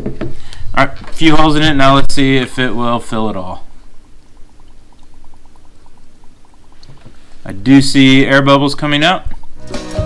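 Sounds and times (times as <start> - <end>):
air bubbling out under water: 1.5 - 7.8.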